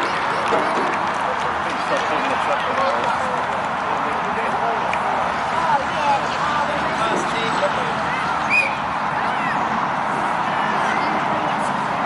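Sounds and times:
many voices calling out: 0.0 - 12.0
steady outdoor hiss: 0.0 - 12.0.

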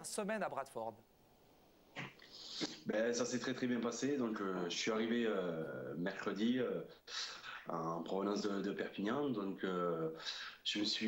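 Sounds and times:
breathy exhale: 10.2 - 10.6.

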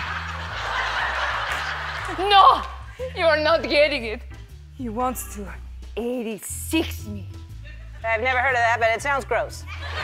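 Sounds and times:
audience laughing: 0.0 - 3.2, 9.7 - 10.0
background music bass line: 0.0 - 10.0.

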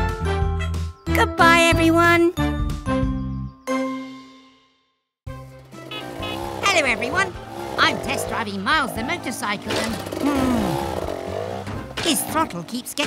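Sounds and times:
background music: 0.0 - 13.0
cartoon voices talking: 5.9 - 11.0.

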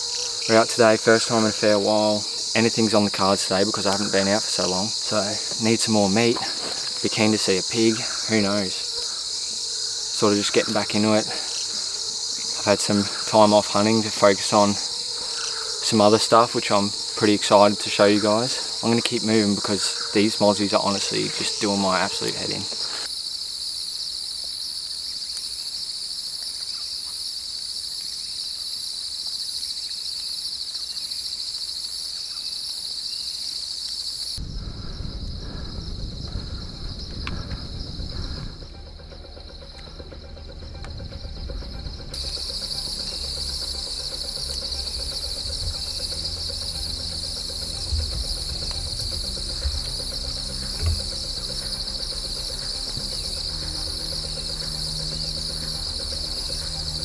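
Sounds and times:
high-pitched insect chorus: 0.0 - 57.0
low rumbling: 34.4 - 57.0.

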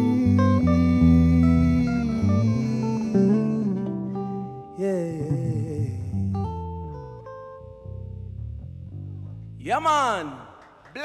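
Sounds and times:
guitars playing: 0.0 - 9.8
man shouting: 9.6 - 10.6.

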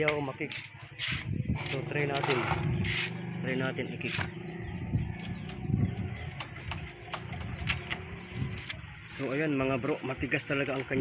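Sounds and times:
motorcycle kick-start thuds: 2.0 - 4.4.

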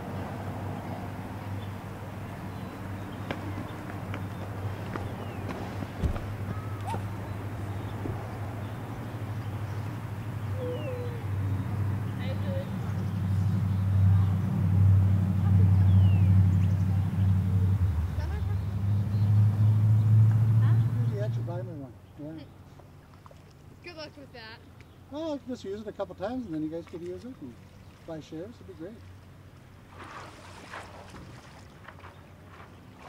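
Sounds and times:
low mechanical hum: 0.0 - 25.0
faint distant voices: 2.4 - 19.7.

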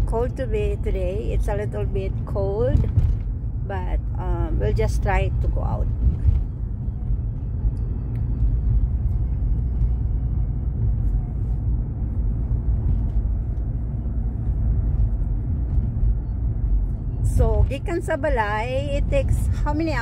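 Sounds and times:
car cabin road rumble: 0.0 - 20.0.

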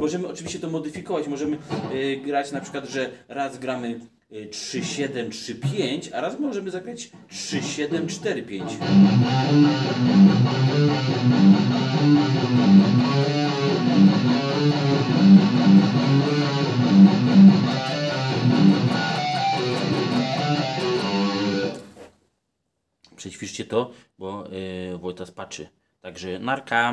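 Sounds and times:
distorted electric guitar riff: 8.6 - 21.9.

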